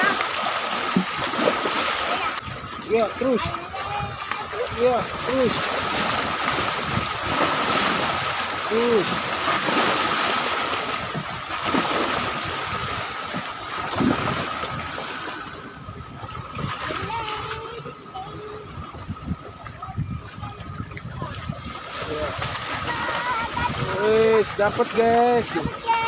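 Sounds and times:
small waves splashing: 0.0s - 26.0s.

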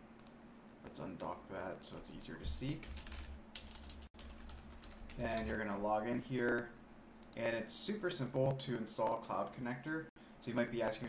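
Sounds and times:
low steady hum: 0.0s - 11.0s
computer keyboard keys clicking: 1.9s - 5.6s.

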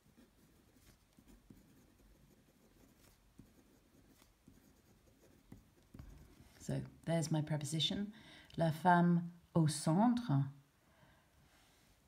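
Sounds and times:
pen scratching on paper: 0.0s - 6.6s.

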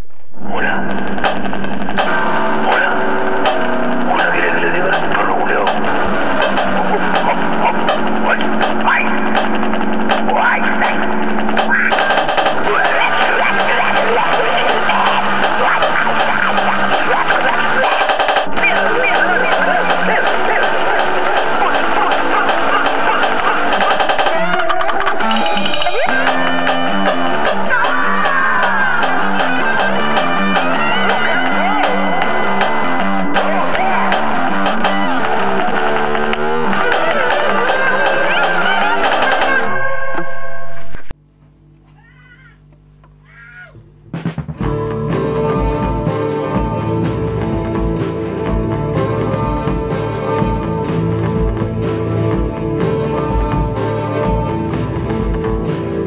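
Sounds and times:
distorted lo-fi rock music: 0.0s - 41.8s, 42.8s - 56.0s
short meow-like call: 41.9s - 42.6s.

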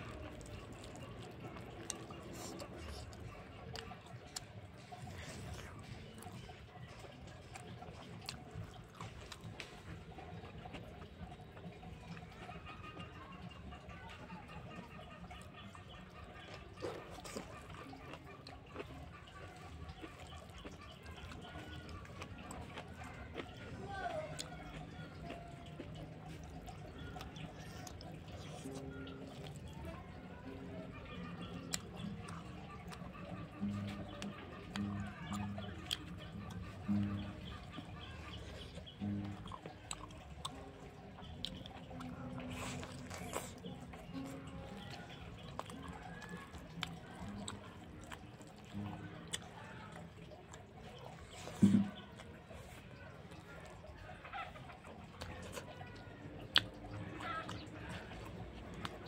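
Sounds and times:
chewing and mouth clicks: 0.0s - 59.0s
chickens clucking: 0.0s - 59.0s.

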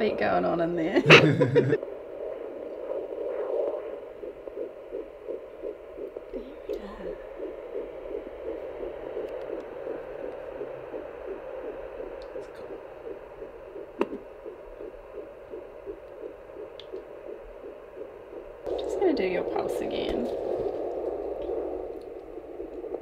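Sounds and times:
fast heartbeat pulse from speaker: 0.0s - 23.0s.

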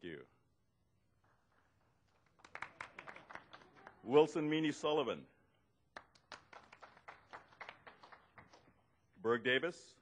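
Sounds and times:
faint sparse clapping: 1.2s - 4.0s, 5.9s - 8.8s.

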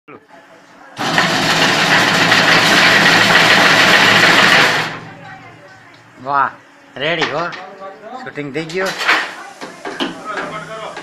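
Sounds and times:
machine mechanical whir: 1.0s - 7.8s.

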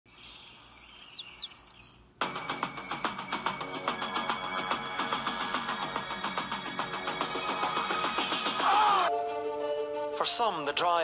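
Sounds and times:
birds chirping and whistling: 0.1s - 2.1s
music with steady beat: 2.2s - 10.2s.

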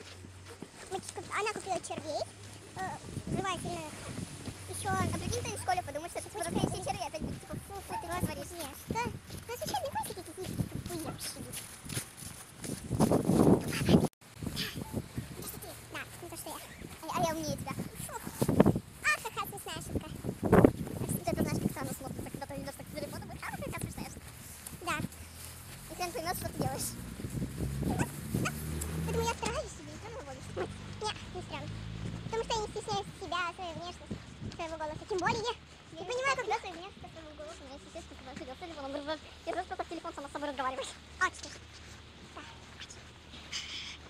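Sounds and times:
girls talking and calling out: 0.0s - 12.4s, 13.6s - 44.0s.

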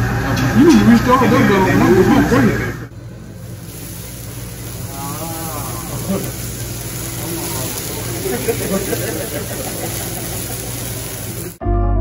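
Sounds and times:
flambe flare-up hissing and sizzling: 1.8s - 11.6s.

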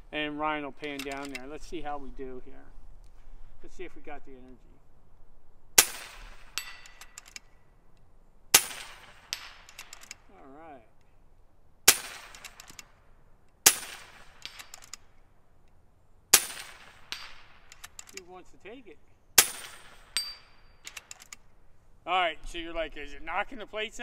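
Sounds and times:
metallic clicks of slugs hitting steel: 0.8s - 1.5s, 5.8s - 10.3s, 11.9s - 15.8s, 16.4s - 18.3s, 19.4s - 21.6s
air rifle shots: 5.8s - 7.5s, 8.5s - 10.2s, 11.8s - 13.0s, 13.6s - 15.1s, 16.3s - 18.1s, 19.4s - 21.5s.

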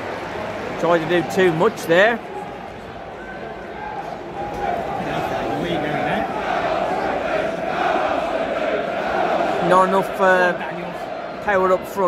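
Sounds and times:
crowd chanting: 2.4s - 12.0s.

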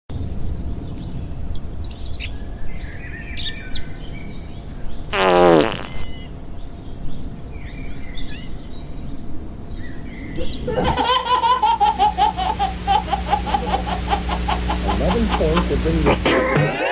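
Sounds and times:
low outdoor rumble: 0.1s - 5.1s, 6.0s - 16.8s
birds chirping: 0.7s - 16.4s
fart sound effect: 5.1s - 6.1s.

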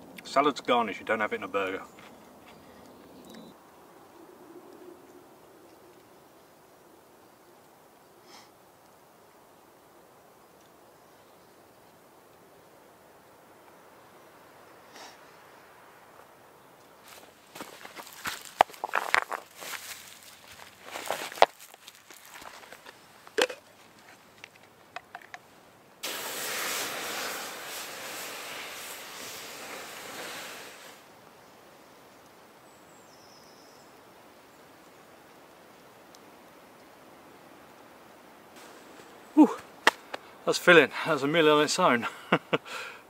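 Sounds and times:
steam hissing from embers: 26.0s - 31.6s, 38.6s - 41.2s.

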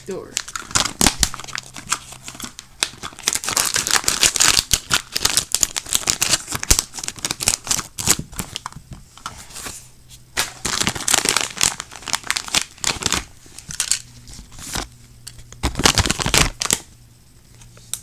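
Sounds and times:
plastic packaging crinkling: 0.1s - 16.9s.

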